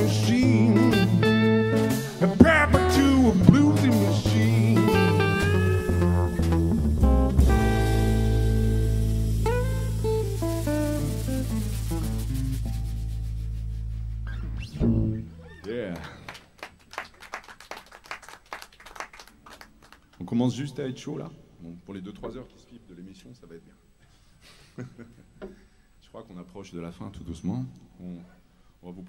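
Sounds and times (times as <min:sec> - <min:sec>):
blues band playing: 0:00.0 - 0:15.6
guitar notes: 0:00.0 - 0:15.7
low held bass note: 0:05.1 - 0:15.5.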